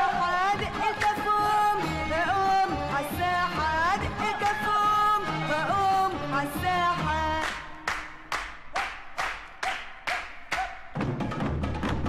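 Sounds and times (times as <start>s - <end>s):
music: 0.0s - 12.0s
rhythmic handclaps: 4.0s - 5.1s, 6.9s - 12.0s.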